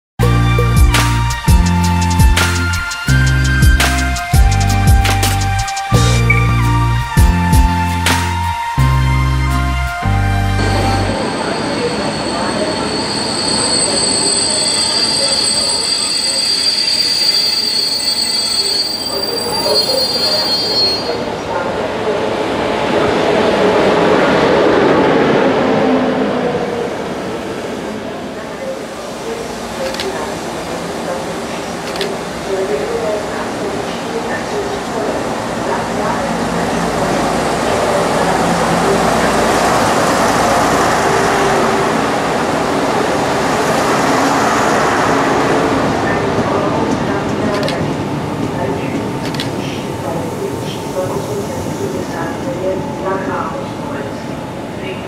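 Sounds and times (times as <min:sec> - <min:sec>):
train rumble: 0:00.2 - 0:55.0
train wheel squeal: 0:10.6 - 0:21.3.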